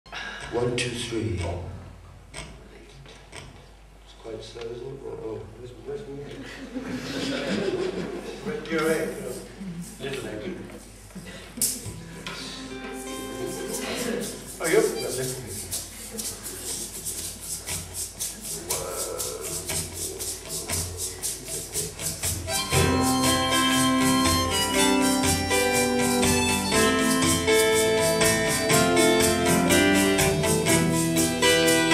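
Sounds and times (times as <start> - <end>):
egg shaker rhythm: 8.9 - 10.0, 12.9 - 31.9
sustained band chords: 22.4 - 31.9.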